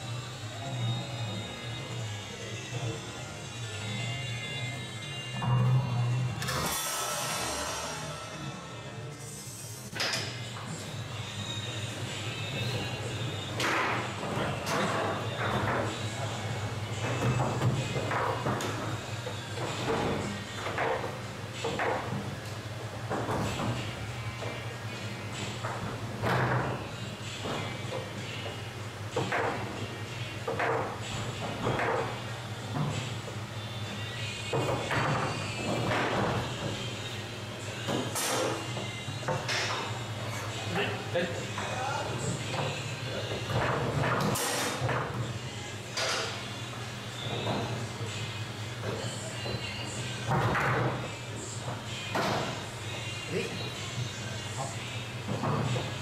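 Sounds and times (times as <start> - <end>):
background music: 0.0 - 56.0
rushing noise: 6.6 - 9.8.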